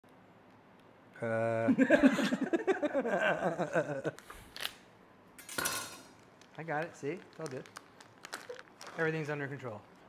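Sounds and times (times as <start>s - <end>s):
plastic crinkling rip: 4.5s - 4.8s, 6.2s - 9.7s.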